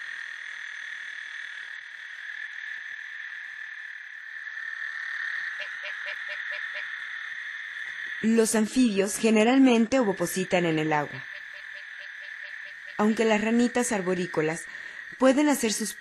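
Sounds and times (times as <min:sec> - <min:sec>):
frogs and toads trilling: 0:00.0 - 0:16.0.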